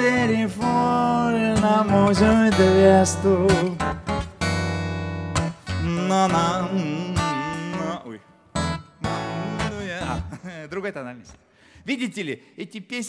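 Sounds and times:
man singing: 0:00.0 - 0:03.9, 0:05.7 - 0:08.4, 0:09.0 - 0:10.4
strummed acoustic guitar: 0:00.0 - 0:10.4.

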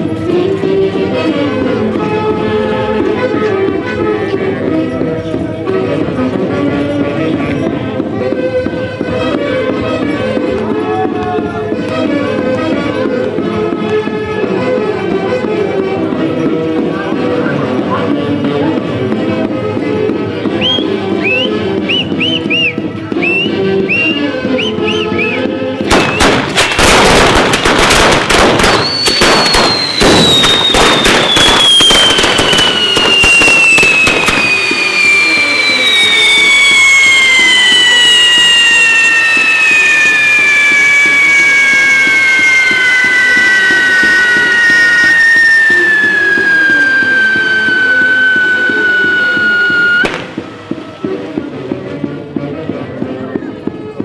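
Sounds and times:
band music: 0:00.0 - 0:27.4, 0:28.4 - 0:54.0
whistling fireworks: 0:07.3 - 0:14.8, 0:19.8 - 0:52.2
firecracker bangs: 0:25.8 - 0:51.8.

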